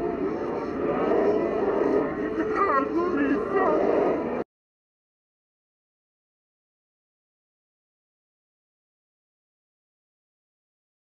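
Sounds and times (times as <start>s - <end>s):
speech played backwards: 1.0s - 4.2s.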